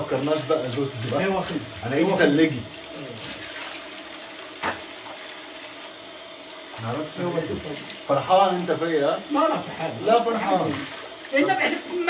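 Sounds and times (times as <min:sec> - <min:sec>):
tap running into a sink: 0:00.0 - 0:05.7, 0:06.7 - 0:09.0.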